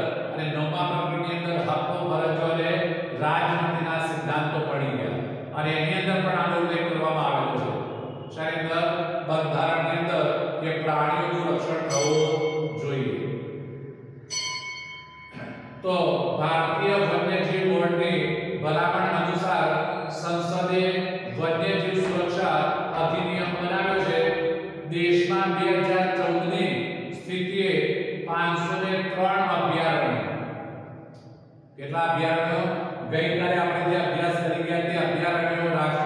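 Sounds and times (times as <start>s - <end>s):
man lecturing: 0.0s - 13.2s, 15.4s - 30.3s, 31.8s - 36.0s
man reading aloud: 0.0s - 13.2s, 15.4s - 30.2s, 31.8s - 36.0s.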